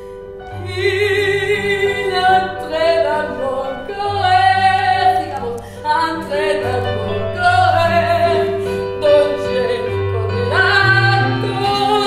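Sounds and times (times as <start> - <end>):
low musical accompaniment: 0.0 - 12.0
woman singing with vibrato: 0.5 - 12.0.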